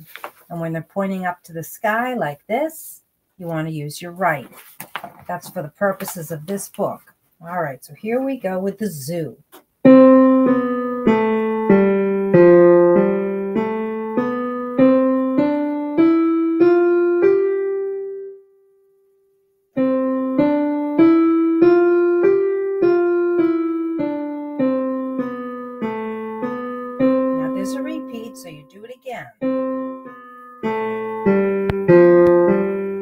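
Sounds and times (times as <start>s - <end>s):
digital piano melody: 9.8s - 18.6s, 19.7s - 33.0s.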